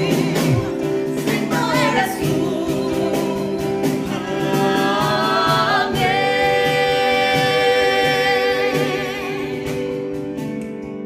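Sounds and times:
choir singing in harmony: 0.0s - 10.3s
keyboard: 0.0s - 11.0s.

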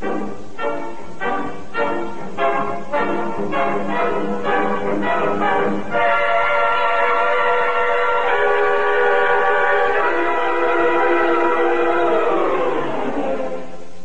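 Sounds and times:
sustained brass chords: 0.0s - 13.9s
orchestral brass stabs: 0.0s - 14.0s.

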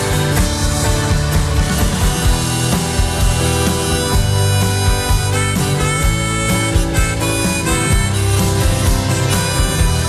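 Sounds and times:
drums and bass beat: 0.0s - 10.0s
lead instrument held notes: 2.2s - 10.0s.

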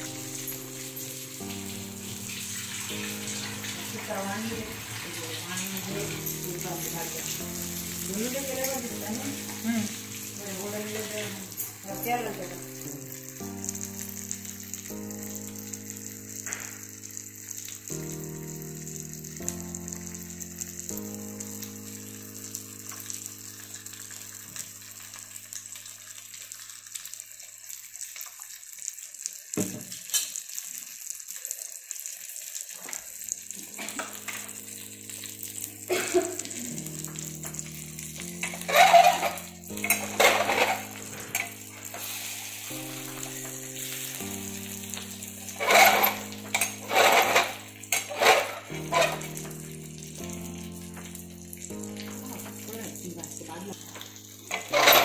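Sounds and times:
background music with held chords: 0.0s - 25.8s, 33.3s - 55.0s
fish sizzling in oil: 0.0s - 55.0s
spatula scraping and clinking: 38.4s - 42.1s, 45.4s - 49.5s, 54.5s - 55.0s.

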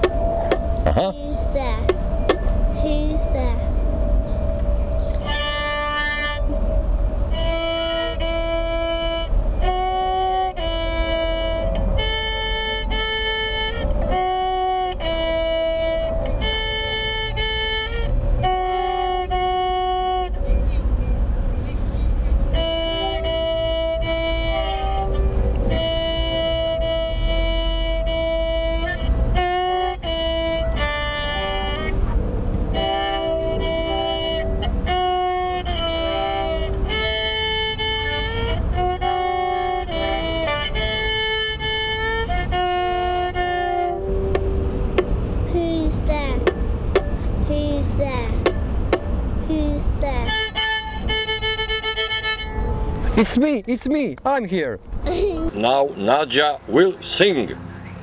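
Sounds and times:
low rumble: 0.0s - 49.5s
bowed violin tune: 0.0s - 57.6s.

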